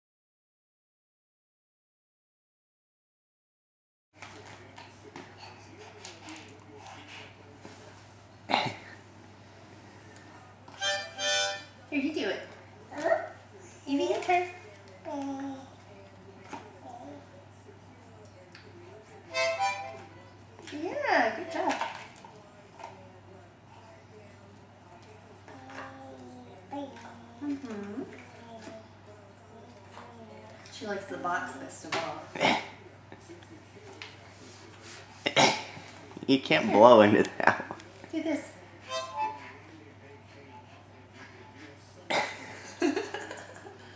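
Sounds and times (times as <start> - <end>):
breathy harmonica chords: 10.8 - 11.8, 19.3 - 20.0, 38.8 - 39.5.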